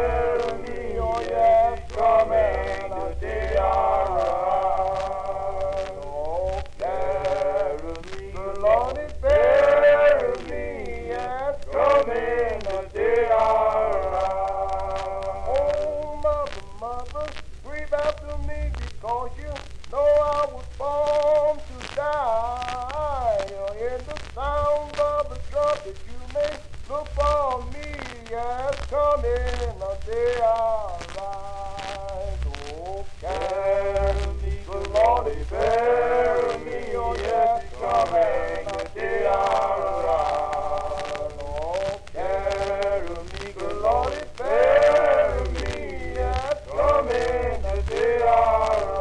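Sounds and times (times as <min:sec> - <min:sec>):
person singing sliding notes: 0:00.0 - 0:49.0.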